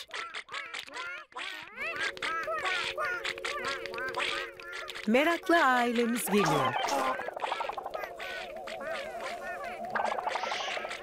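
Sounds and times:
cartoon puppet chatter: 0.0s - 11.0s.

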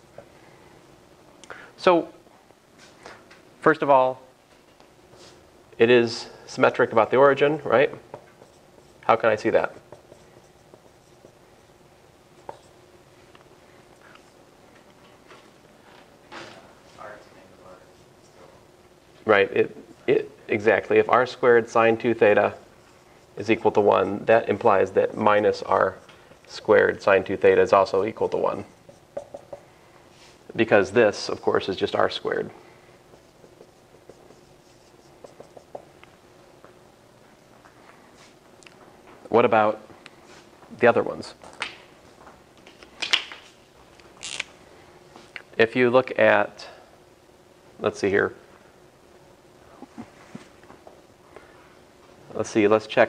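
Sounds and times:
faint room hum: 0.0s - 53.0s
marker pen writing on whiteboard: 7.8s - 12.8s, 20.7s - 29.7s, 31.1s - 36.0s
marker squeaking on whiteboard: 8.1s - 12.8s, 28.1s - 29.6s, 33.0s - 35.9s
light marker taps: 28.3s - 29.7s, 33.1s - 35.9s.

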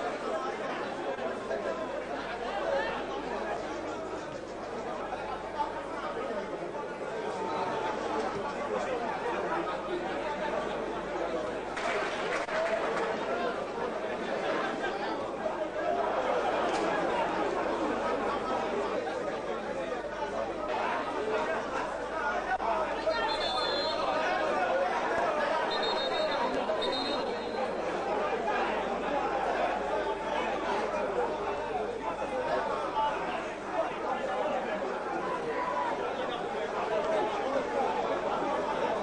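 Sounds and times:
stadium crowd babble: 0.0s - 39.0s.

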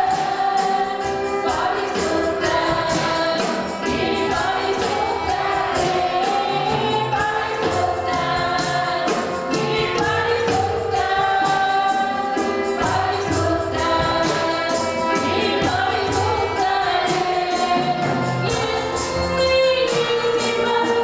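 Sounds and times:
violin: 0.0s - 21.0s
woman singing into a microphone: 0.0s - 21.0s.

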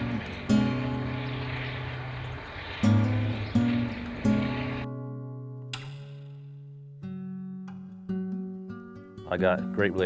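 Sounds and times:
steady rushing outdoor noise: 0.0s - 4.9s
acoustic guitar music: 0.0s - 10.0s.

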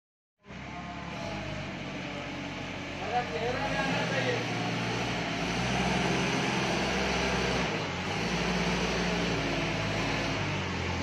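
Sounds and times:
forklift running: 0.4s - 11.0s.

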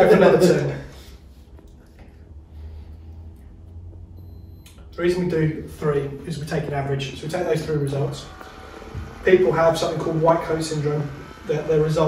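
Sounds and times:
blood pressure pump humming: 1.2s - 12.0s.

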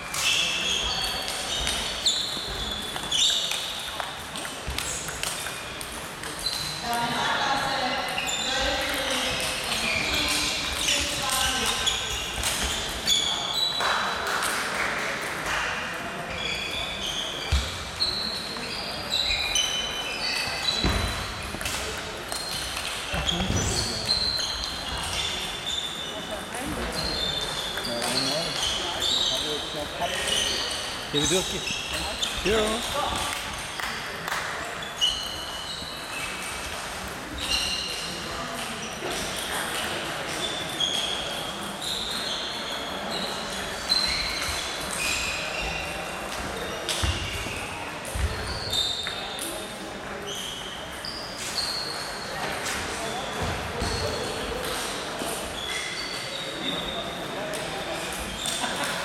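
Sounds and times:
players talking: 23.1s - 33.8s.

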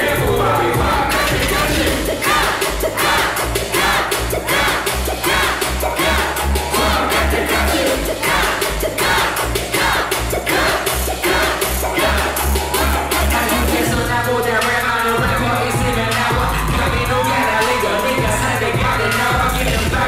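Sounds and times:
bass-heavy hip hop beat: 0.0s - 20.0s
crowd shouting along: 0.0s - 20.0s
rapper on the mic: 0.0s - 20.0s.

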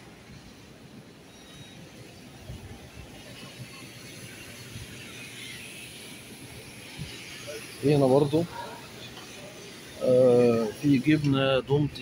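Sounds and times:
floor scrubber hissing: 3.1s - 11.9s.

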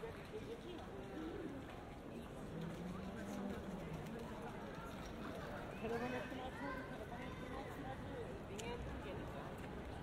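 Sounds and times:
passers-by talking: 0.0s - 10.0s.

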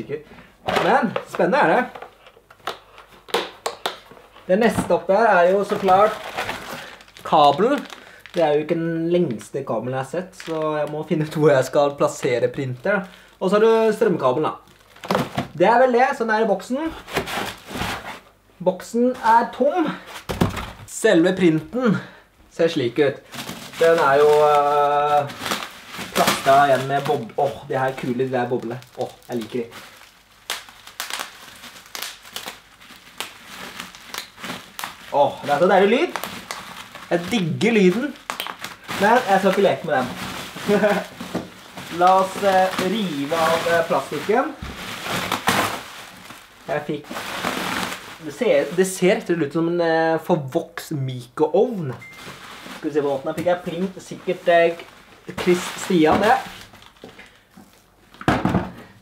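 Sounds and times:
plastic crinkling: 0.0s - 15.6s, 16.8s - 18.2s, 23.1s - 49.5s, 51.8s - 58.8s
bubble wrap popping: 0.7s - 9.4s, 10.2s - 13.3s, 14.5s - 15.6s, 23.3s - 49.3s.

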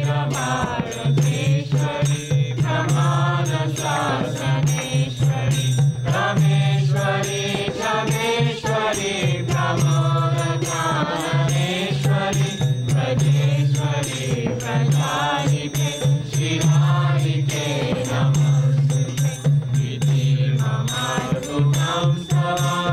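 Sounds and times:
chorus singing a devotional chant: 0.0s - 22.9s
steady percussion beat: 0.0s - 22.9s.

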